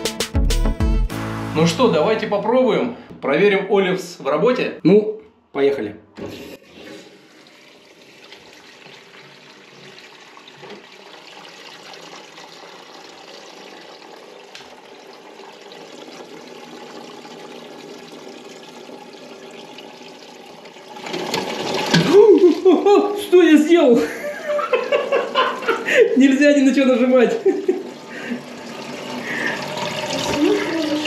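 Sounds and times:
water hissing into cistern: 6.6s - 23.3s, 27.3s - 31.0s.

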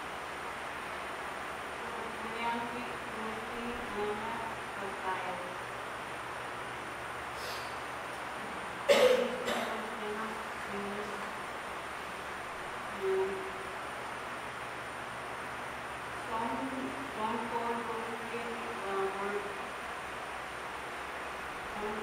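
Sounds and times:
steady hiss: 0.0s - 22.0s
woman singing a note: 12.9s - 13.5s.

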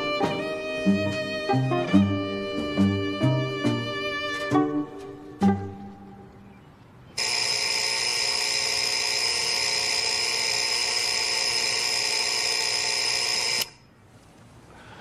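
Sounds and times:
alarm clock ringing: 7.2s - 13.8s.

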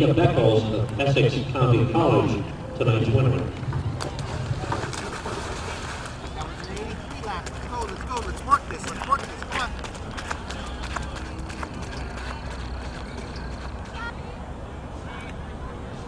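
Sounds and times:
runners' quick footfalls: 3.6s - 14.1s.

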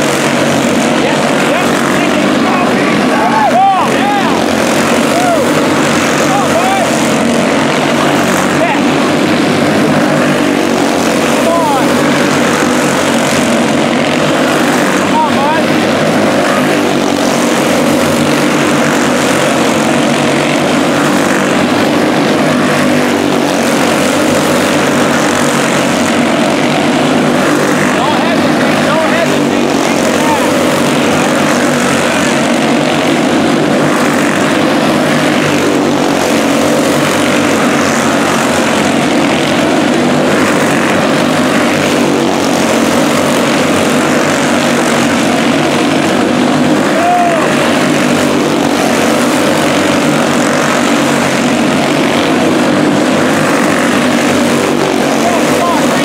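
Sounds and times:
small race car engines buzzing: 0.0s - 56.0s.

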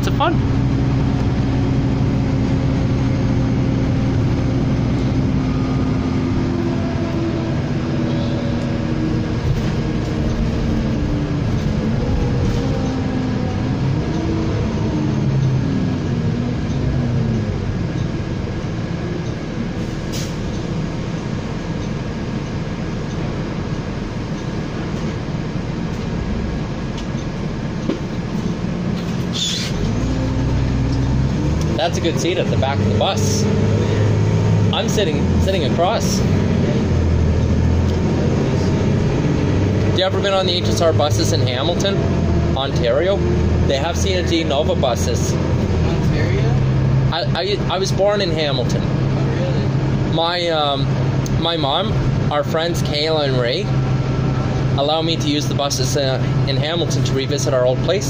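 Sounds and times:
bus engine hum: 0.0s - 58.0s
road noise: 0.0s - 58.0s.

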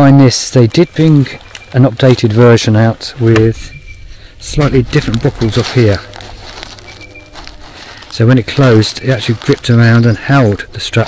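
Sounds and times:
thin bird whistle: 3.6s - 4.3s, 6.8s - 7.4s.

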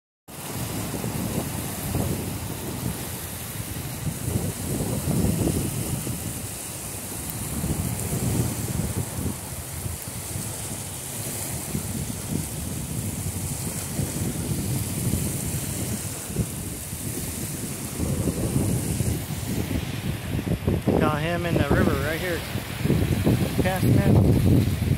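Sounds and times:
wind buffeting microphone: 0.3s - 24.9s
steady hiss: 20.9s - 24.9s.

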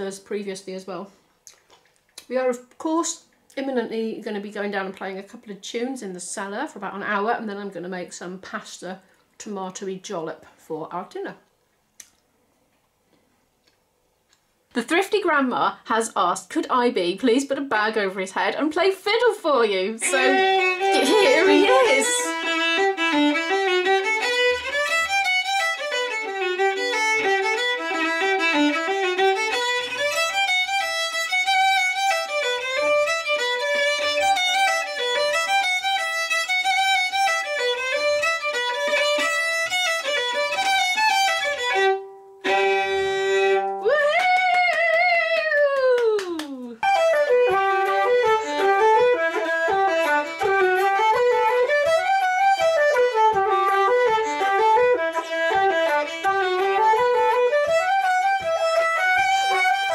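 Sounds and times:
violin playing fast tune: 20.0s - 44.5s, 46.8s - 59.9s.

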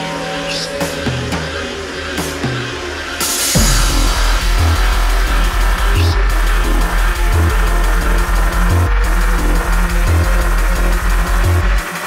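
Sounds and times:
downward-sliding synth notes: 0.0s - 12.0s
deep steady bass: 1.2s - 11.9s.

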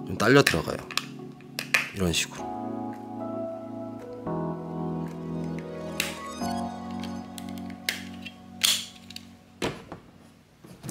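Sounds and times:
soft background music: 0.0s - 10.9s.

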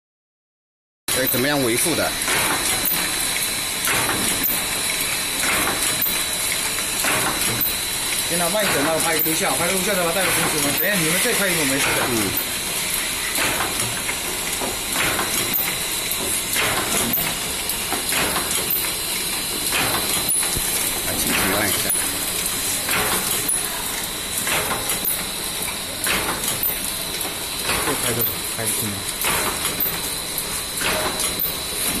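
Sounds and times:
machine mechanism stroke: 1.1s - 32.0s
wrapping machine hissing: 1.1s - 32.0s.

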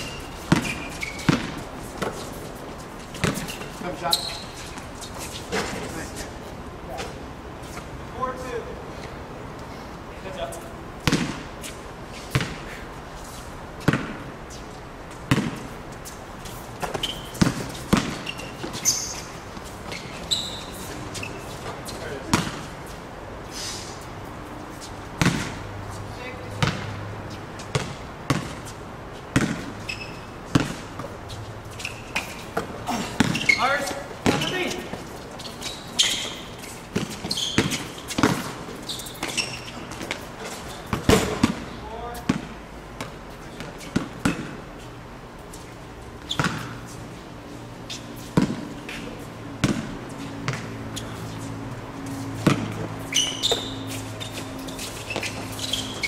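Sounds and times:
basketball bouncing on hard court: 0.0s - 2.2s, 3.1s - 3.6s, 11.0s - 11.4s, 12.3s - 12.6s, 13.8s - 14.2s, 15.3s - 15.8s, 16.8s - 19.1s, 22.2s - 22.6s, 25.2s - 25.6s, 26.6s - 27.0s, 27.7s - 28.6s, 29.3s - 31.2s, 31.9s - 35.0s, 35.6s - 40.2s, 40.8s - 44.6s, 46.3s - 46.8s, 48.4s - 49.0s, 49.6s - 50.8s, 52.4s - 53.8s.

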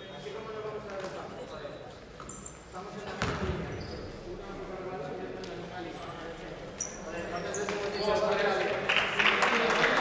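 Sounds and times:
basketball bouncing on hard floor: 3.2s - 3.7s.

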